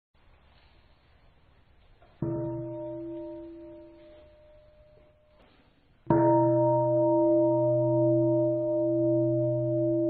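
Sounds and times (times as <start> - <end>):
large bowl bell ringing: 2.2 - 5.4, 6.1 - 10.0.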